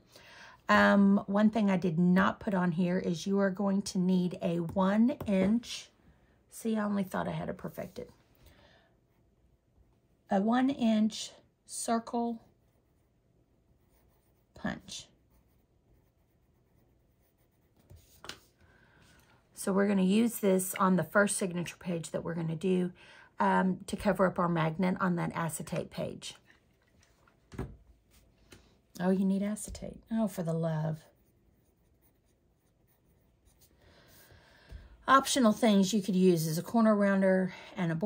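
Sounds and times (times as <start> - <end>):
pencil scratching on paper: 12.4 - 18.4, 30.2 - 34.3
paper and pencil handling: 15.4 - 18.6.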